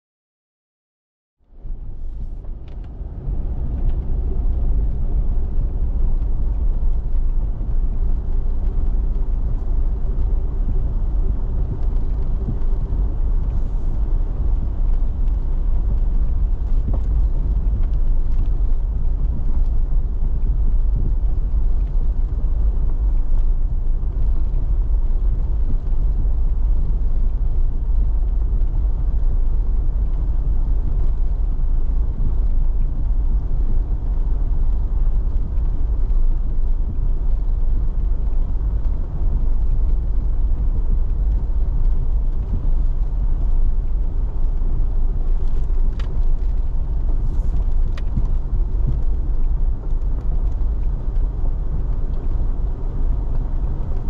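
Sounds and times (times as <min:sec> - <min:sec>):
vehicle engine and tyres rumbling: 0:01.4 - 0:54.0.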